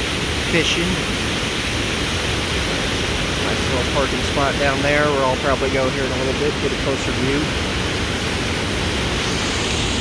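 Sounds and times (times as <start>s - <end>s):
water rushing through dam gates: 0.0s - 10.0s.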